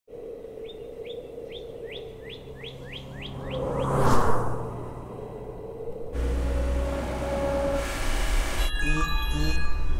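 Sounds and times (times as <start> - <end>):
songbird chirping: 0.2 - 4.0
rushing noise: 3.1 - 8.8
steady low hum: 4.5 - 8.6.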